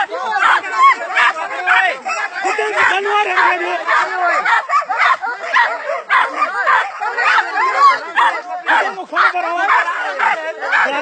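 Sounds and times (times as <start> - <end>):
dog barking and yelping: 0.0 - 11.0
men shouting: 0.0 - 11.0.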